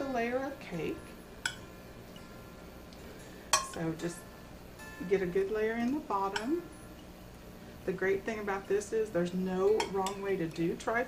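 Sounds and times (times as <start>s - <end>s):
metal spoon clinking on glass bowl: 3.5s - 3.8s, 9.6s - 10.3s.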